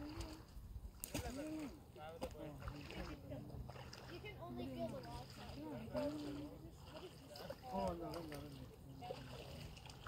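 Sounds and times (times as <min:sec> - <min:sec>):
people talking: 0:01.1 - 0:09.6.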